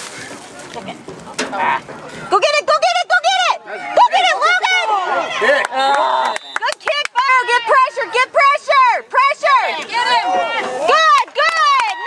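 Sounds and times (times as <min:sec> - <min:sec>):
spectators shouting: 0:03.1 - 0:12.0.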